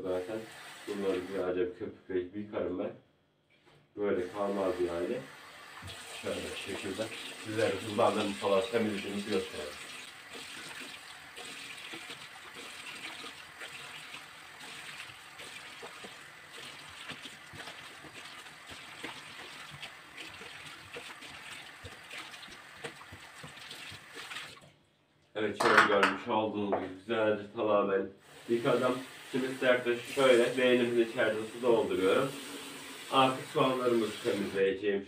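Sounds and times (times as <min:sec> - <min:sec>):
tap water running into sink: 0:00.0 - 0:01.4, 0:04.2 - 0:24.7, 0:28.3 - 0:34.6.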